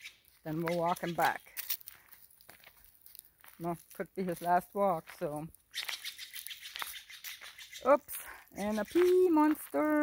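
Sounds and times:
footsteps crunching dry leaves: 0.0s - 10.0s.

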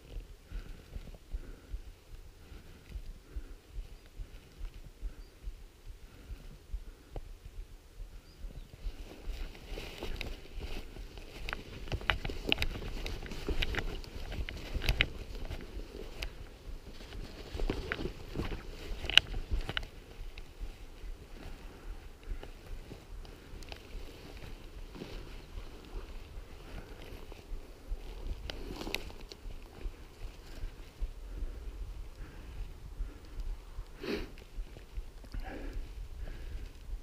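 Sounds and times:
footsteps through brush: 0.0s - 37.0s
brush rustling against clothing: 8.6s - 32.4s
sharp clicks and snaps: 11.4s - 16.4s, 17.1s - 20.5s.

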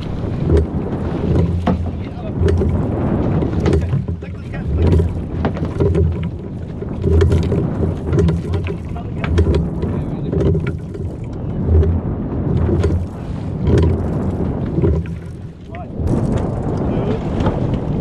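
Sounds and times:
fish thrashing and splashing: 0.0s - 17.6s
wind buffeting microphone: 0.0s - 18.0s
sharp knocks: 0.4s - 2.8s.

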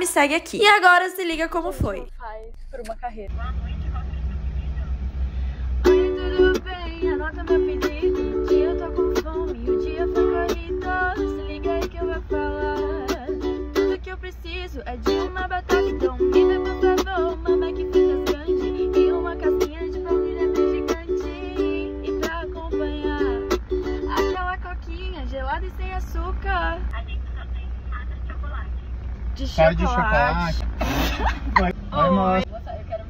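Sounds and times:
ukulele strumming: 5.8s - 25.1s
woman singing pop melody: 5.8s - 28.8s.

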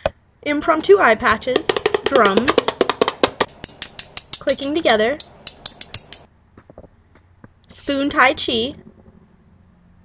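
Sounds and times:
plastic spoons clicking together: 3.5s - 6.3s.

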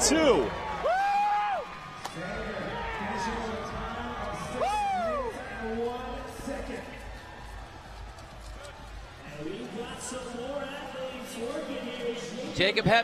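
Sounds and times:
spectator whooping: 0.1s - 1.7s, 4.4s - 5.4s.

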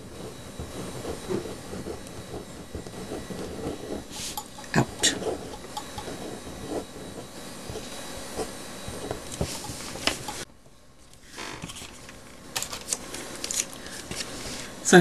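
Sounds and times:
pen scratching on paper: 0.0s - 10.4s.

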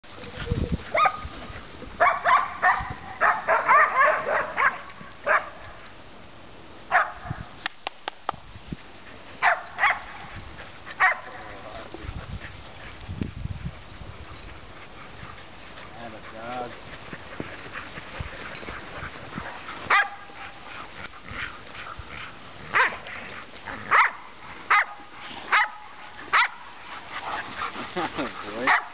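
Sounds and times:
dogs barking: 0.9s - 1.3s, 2.0s - 5.6s, 6.9s - 7.3s, 9.4s - 10.3s, 10.9s - 11.6s, 19.5s - 20.7s, 22.6s - 23.1s, 23.7s - 28.9s.

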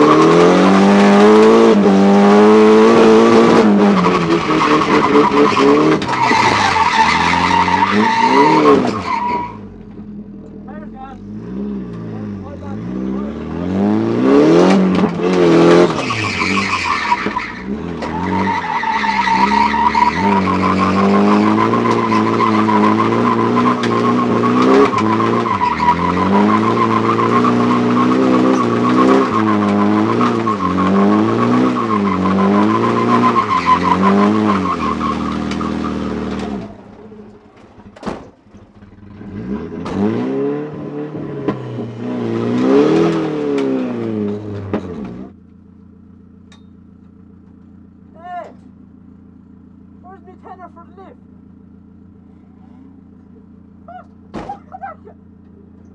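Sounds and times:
car engine revving: 0.0s - 37.9s, 38.5s - 45.4s
tyre squeal: 3.8s - 9.7s, 15.2s - 36.8s.

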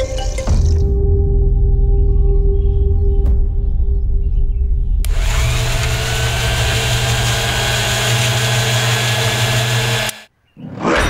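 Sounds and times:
electric motor whirring: 5.0s - 10.3s.

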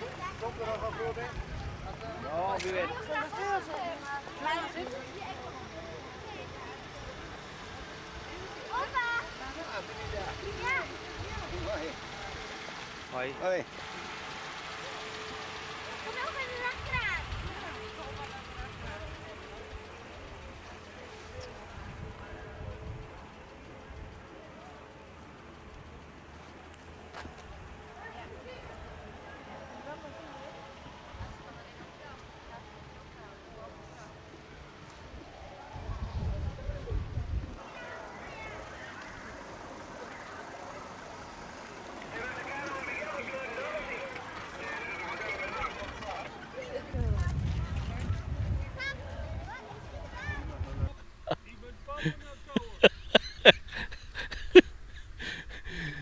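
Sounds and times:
slow-moving car running: 0.0s - 56.0s
vehicle engine hum: 0.0s - 56.0s
indistinct voices of onlookers: 26.8s - 52.8s
indistinct voices: 37.6s - 47.0s.

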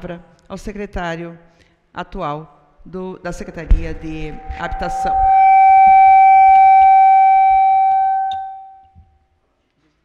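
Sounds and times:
high-pitched microphone feedback howl: 3.3s - 8.9s.

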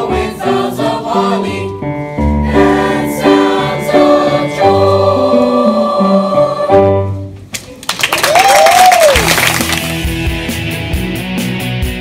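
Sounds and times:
audience applause: 7.8s - 10.1s
music with steady bass line: 9.5s - 12.0s.

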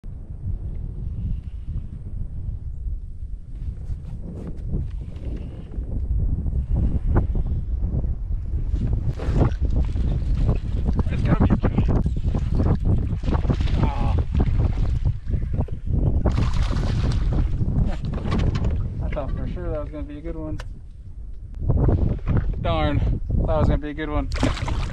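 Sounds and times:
wind buffeting microphone: 0.0s - 24.9s
sharp knocks and rustles: 17.8s - 19.3s.

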